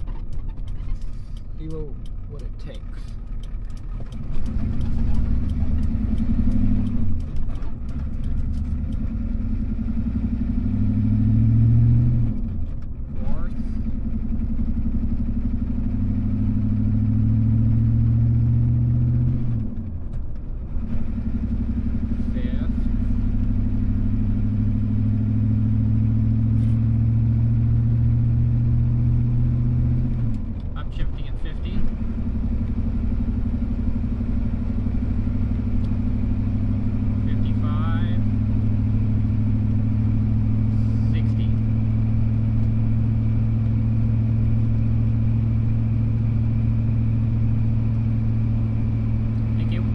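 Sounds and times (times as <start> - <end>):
diesel engine accelerating: 0.0 - 49.9.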